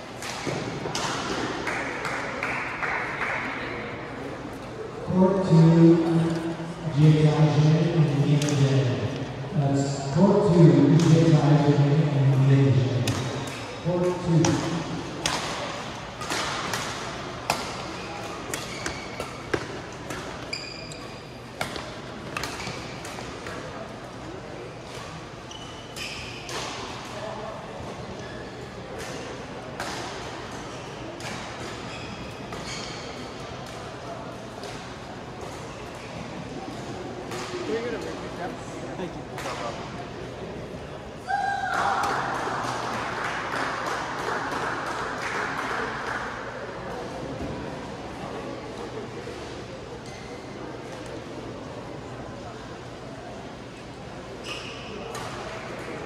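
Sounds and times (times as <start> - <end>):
racket hitting shuttlecock: 0.2 - 2.2, 13.0 - 13.8, 14.4 - 21.0, 21.6 - 23.7
court shoes squeaking: 4.4 - 38.3, 49.2 - 51.0, 53.7 - 56.0.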